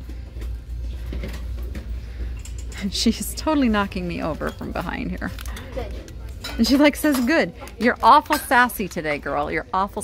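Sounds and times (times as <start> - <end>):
low store hum: 0.0 - 10.0.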